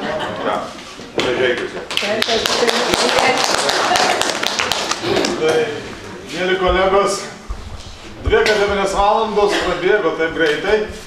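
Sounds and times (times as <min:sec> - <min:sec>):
people clapping: 0:01.2 - 0:05.8.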